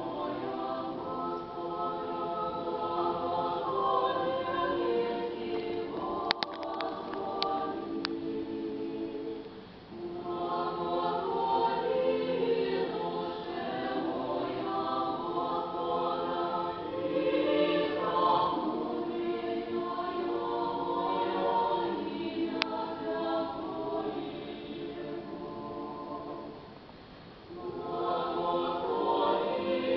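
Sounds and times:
mixed choir singing a cappella: 0.0s - 29.9s
faint click: 5.6s - 8.2s.

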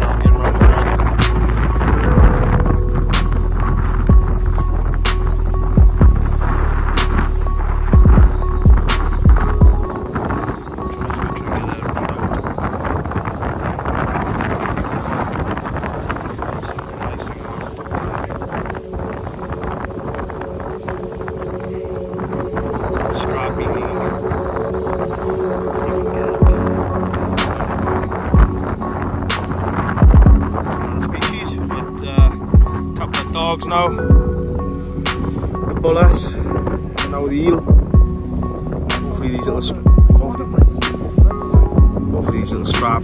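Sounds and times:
strong wind buffeting microphone: 0.0s - 43.0s.

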